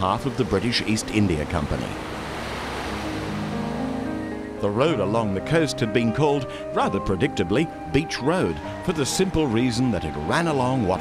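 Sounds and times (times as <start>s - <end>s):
waves breaking on beach: 0.0s - 4.1s.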